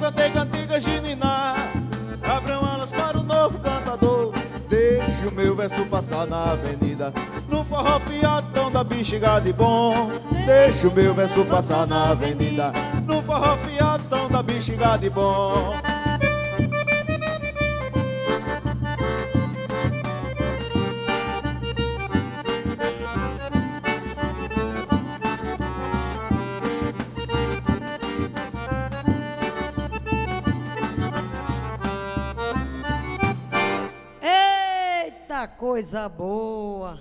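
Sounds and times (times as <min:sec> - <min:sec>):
bass drum beats: 0:00.0 - 0:33.8
accordion melody: 0:00.0 - 0:34.8.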